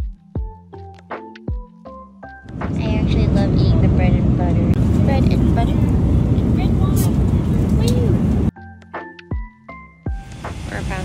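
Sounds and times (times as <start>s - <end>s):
airliner cabin rumble: 2.5s - 8.5s
woman talking: 10.7s - 11.0s.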